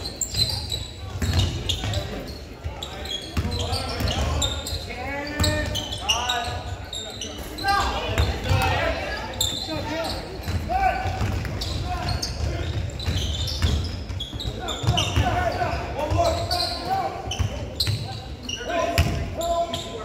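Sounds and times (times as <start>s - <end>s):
people calling out in gym: 0.0s - 20.0s.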